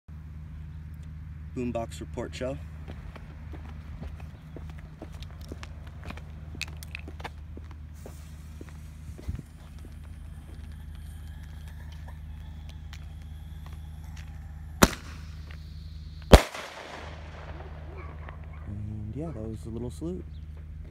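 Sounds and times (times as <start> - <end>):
steady low rumble: 0.1 - 20.9
light footsteps: 2.6 - 19.5
firework tube firing bang: 14.8 - 15.3, 16.3 - 17.9.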